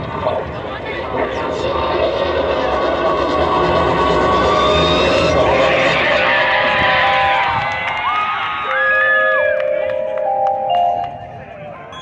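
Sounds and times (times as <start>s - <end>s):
crowd cheering: 5.1s - 12.0s.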